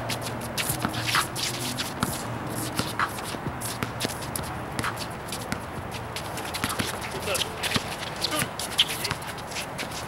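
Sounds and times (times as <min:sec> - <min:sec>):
sneakers scuffing on concrete: 0:00.0 - 0:10.0.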